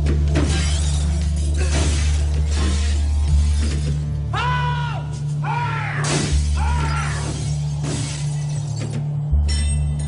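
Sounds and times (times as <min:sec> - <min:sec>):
glass smashing: 0:00.4 - 0:04.0, 0:06.1 - 0:10.0.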